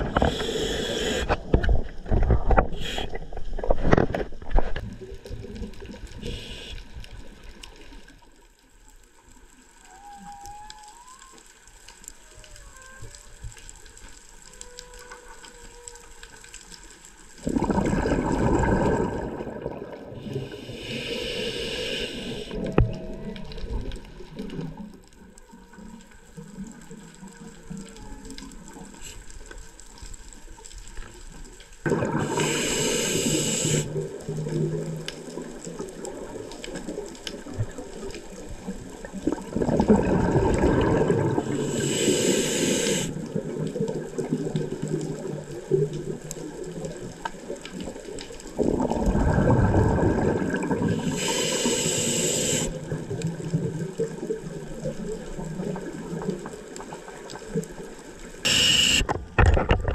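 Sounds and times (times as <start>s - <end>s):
regulator inhale hiss: 0.1s - 1.5s, 2.8s - 3.3s, 6.2s - 7.0s, 20.2s - 22.7s, 32.1s - 34.0s, 41.5s - 43.2s, 50.9s - 52.9s, 58.4s - 59.1s
exhaled bubbles rushing: 17.4s - 20.6s, 31.8s - 32.8s, 33.6s - 41.8s, 47.9s - 51.2s.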